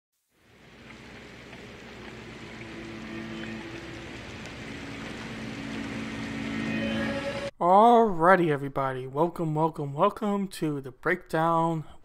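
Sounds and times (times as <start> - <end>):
rushing noise swell: 2.6 - 7.5.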